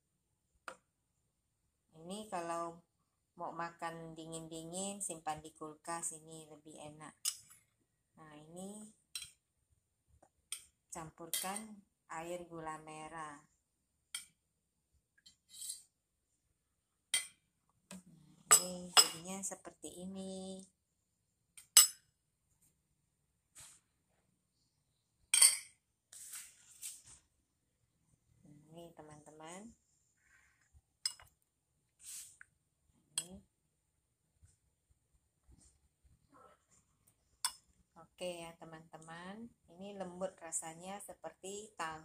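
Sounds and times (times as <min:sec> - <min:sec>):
metal spoon clinking bowl: 0:09.2 - 0:09.4, 0:18.5 - 0:19.2, 0:21.6 - 0:22.0, 0:25.4 - 0:25.7, 0:31.1 - 0:31.3
spoon clinking against ceramic bowl: 0:25.4 - 0:25.7.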